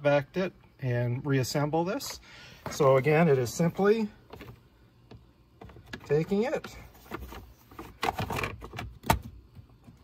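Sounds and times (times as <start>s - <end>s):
plastic filter frame scraping and rattling: 5.7s - 8.9s.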